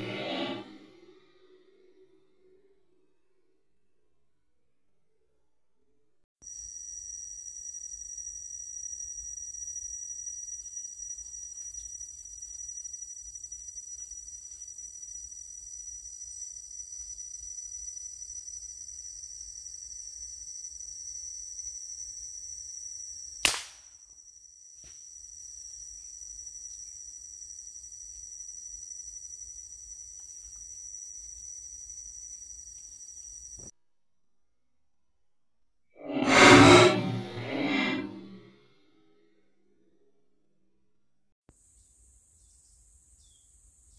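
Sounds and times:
forest insects droning: 0:06.4 - 0:33.7, 0:41.5 - 0:43.9
air rifle shot: 0:23.4 - 0:23.8.

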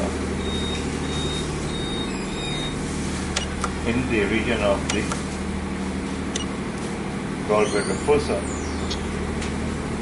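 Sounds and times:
fan-like noise: 0:00.0 - 0:10.0
low machine hum: 0:00.0 - 0:10.0
short clicks: 0:06.3 - 0:06.5.

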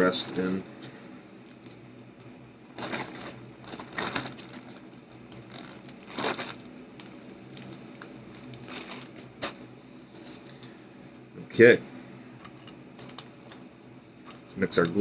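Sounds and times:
plastic bag crinkling: 0:02.7 - 0:09.7.

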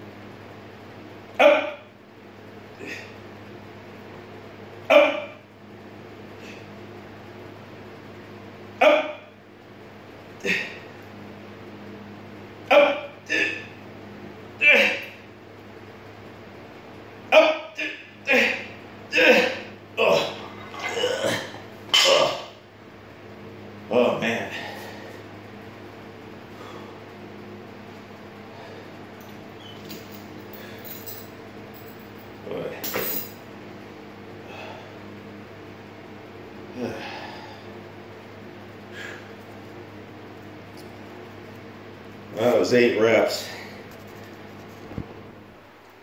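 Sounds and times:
low steady hum: 0:00.0 - 0:46.0
man breathing hard: 0:24.4 - 0:25.2, 0:34.4 - 0:35.0, 0:36.8 - 0:37.8, 0:38.9 - 0:39.4.

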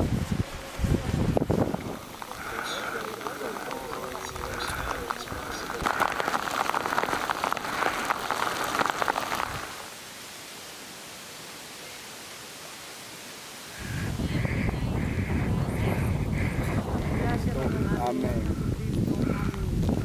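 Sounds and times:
rain on umbrellas: 0:00.0 - 0:20.0.

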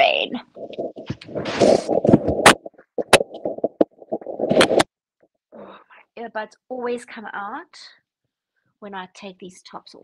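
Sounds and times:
fabric rubbing on microphones: 0:00.1 - 0:04.9
earbuds knocking: 0:00.5 - 0:04.9.

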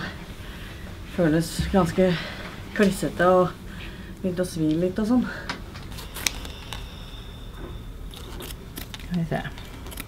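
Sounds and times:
scissors snipping bandage: 0:06.0 - 0:06.8.

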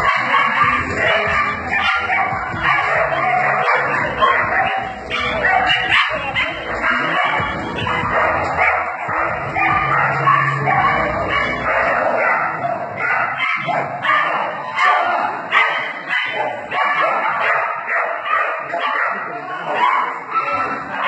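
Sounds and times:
hall noise: 0:00.0 - 0:16.1
dog barking and yipping: 0:00.0 - 0:21.0.

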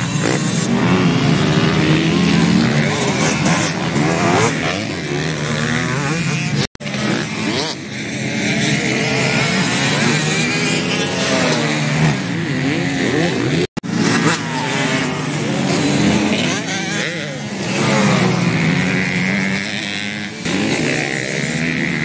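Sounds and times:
motocross bike engines revving: 0:00.0 - 0:22.0.

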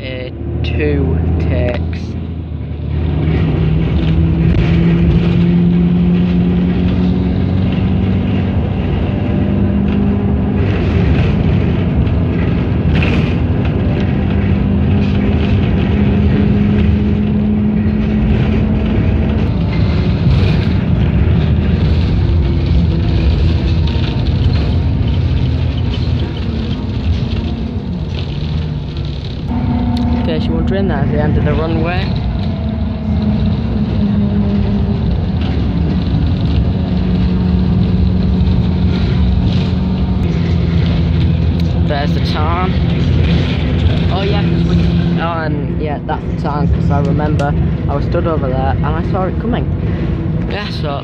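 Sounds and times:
bus engine and road noise: 0:00.0 - 0:51.0.

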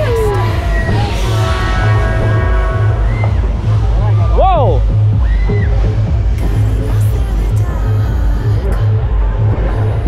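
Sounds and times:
dance music with heavy bass beat: 0:00.0 - 0:10.0.

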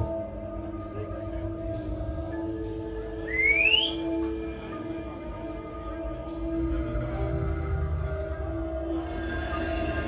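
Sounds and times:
dark ambient music: 0:00.0 - 0:10.0
rising whistle: 0:03.2 - 0:04.2.

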